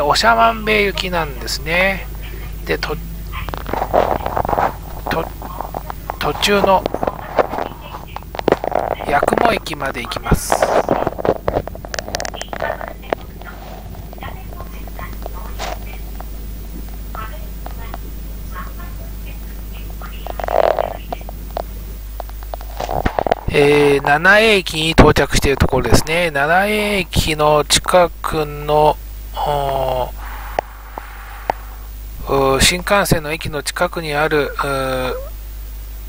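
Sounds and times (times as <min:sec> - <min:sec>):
train interior hum: 0:00.0 - 0:24.7, 0:29.3 - 0:33.1.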